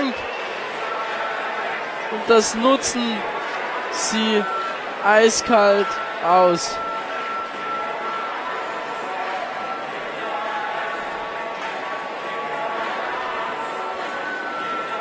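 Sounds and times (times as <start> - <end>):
arena crowd noise: 0.0 - 15.0.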